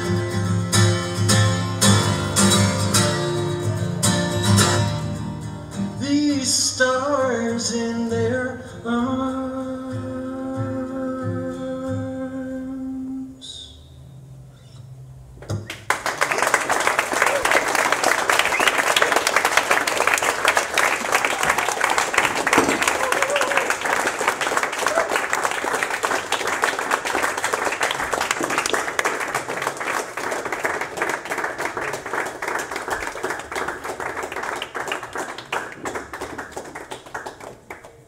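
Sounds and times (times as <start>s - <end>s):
audience applauding: 15.6s - 38.0s.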